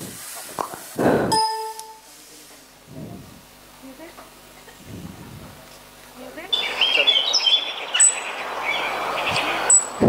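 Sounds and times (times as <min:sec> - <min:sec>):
metallic ding: 0:01.3 - 0:02.0.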